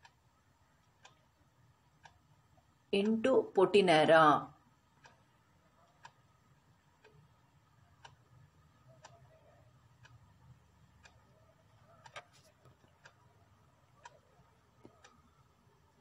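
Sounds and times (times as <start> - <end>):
clock ticking: 0.0 - 16.0.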